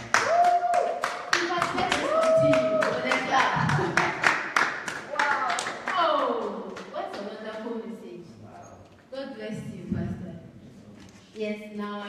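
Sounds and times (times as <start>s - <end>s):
group clapping hands: 0.0s - 7.8s.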